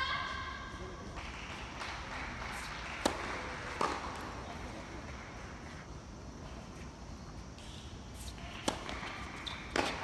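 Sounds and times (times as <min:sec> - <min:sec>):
tennis racket hitting ball: 0:02.5 - 0:04.2, 0:08.2 - 0:10.0.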